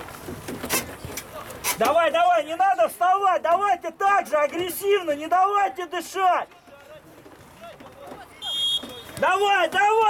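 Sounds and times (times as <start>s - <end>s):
short high whistle blast: 8.4s - 9.2s.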